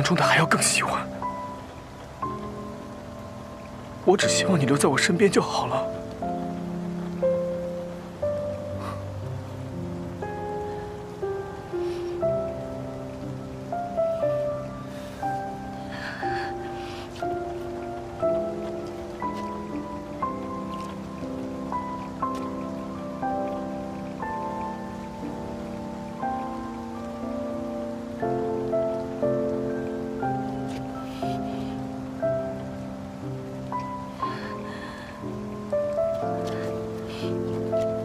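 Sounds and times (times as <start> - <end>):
rain falling: 0.0 - 38.0
soft slow melody music: 0.0 - 38.0.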